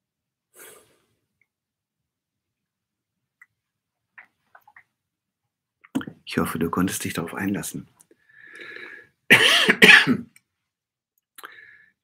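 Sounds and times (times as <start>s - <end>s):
man coughing: 9.3s - 10.4s.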